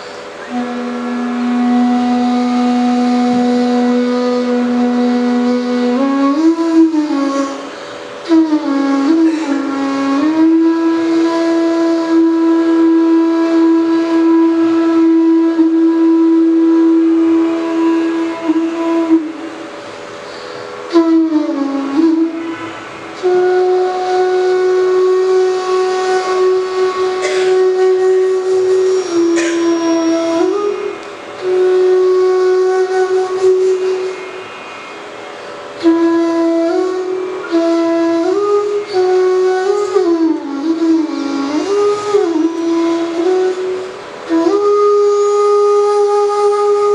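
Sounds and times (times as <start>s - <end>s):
bamboo flute playing slow melody: 0.0s - 46.9s.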